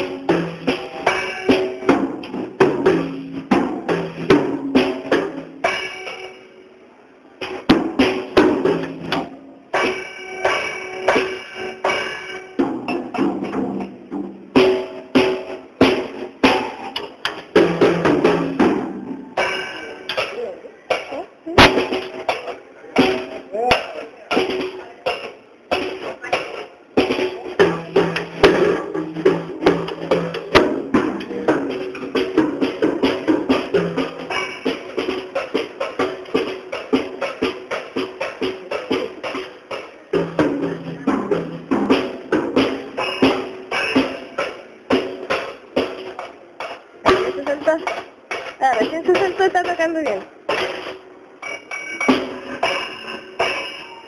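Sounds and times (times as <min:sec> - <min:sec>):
child playing drum kit: 0:00.0 - 0:54.0.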